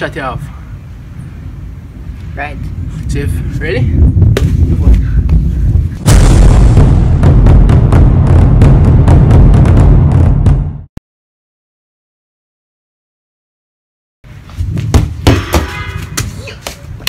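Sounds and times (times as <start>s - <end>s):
low rumble: 0.5s - 10.9s
deep rumbling with sharp crackles: 2.2s - 10.9s
loud boom: 6.0s - 10.9s.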